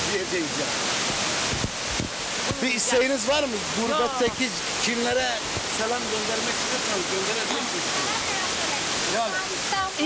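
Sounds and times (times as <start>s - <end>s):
stream water flowing: 0.0s - 10.0s
woman talking: 7.9s - 10.0s.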